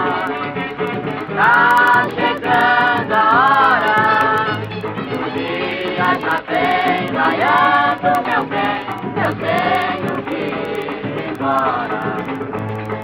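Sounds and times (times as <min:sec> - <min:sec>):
instrumental accompaniment: 0:00.0 - 0:13.0
women singing together: 0:01.3 - 0:04.6, 0:05.3 - 0:12.4.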